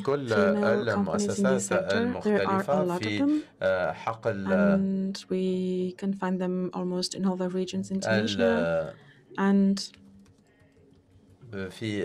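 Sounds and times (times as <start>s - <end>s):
person speaking syllable: 0.0s - 4.9s, 7.9s - 8.9s
computer keyboard typing: 10.0s - 11.4s.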